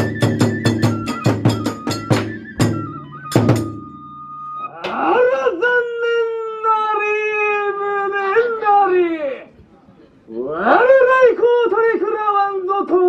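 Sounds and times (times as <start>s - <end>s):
drum strikes: 0.0s - 4.0s
person chanting: 4.7s - 8.4s.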